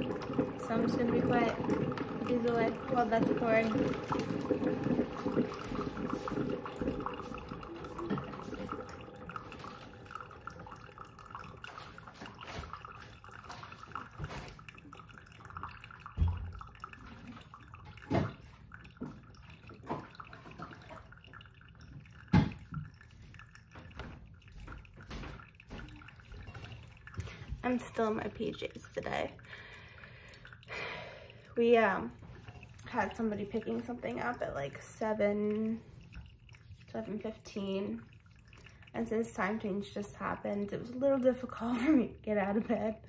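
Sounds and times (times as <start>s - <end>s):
coffee maker dripping and gurgling: 0.0s - 43.0s.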